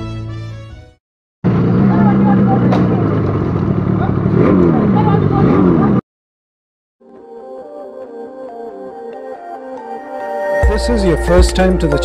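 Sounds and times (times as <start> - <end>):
two-stroke motorcycle engine: 1.4 - 6.0.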